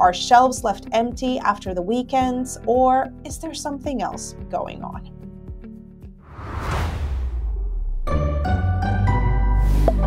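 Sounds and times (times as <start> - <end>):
low rumble: 6.2 - 8.2
whoosh transition effect: 6.2 - 8.2.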